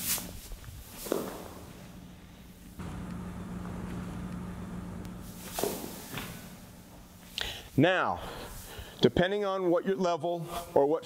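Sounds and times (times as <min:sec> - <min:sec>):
steady low hum: 0:00.4 - 0:09.2.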